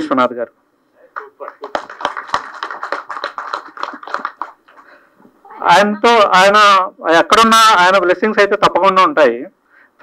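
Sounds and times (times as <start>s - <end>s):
audience clapping: 1.1s - 5.0s.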